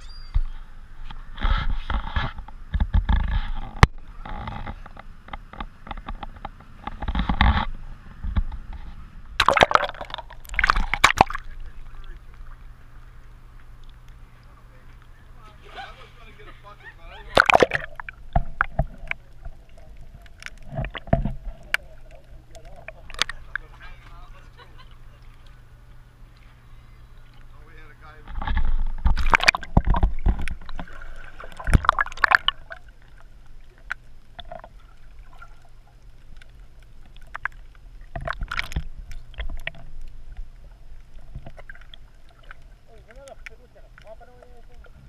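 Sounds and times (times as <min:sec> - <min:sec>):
muffled underwater movement: 0:00.0 - 0:45.0
splashy noise: 0:09.4 - 0:12.6, 0:17.2 - 0:19.2, 0:29.0 - 0:33.0.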